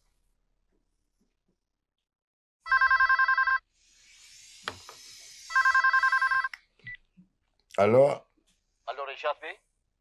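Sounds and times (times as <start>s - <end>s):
telephone ringing with warbling trill: 2.7s - 3.6s, 5.5s - 6.5s.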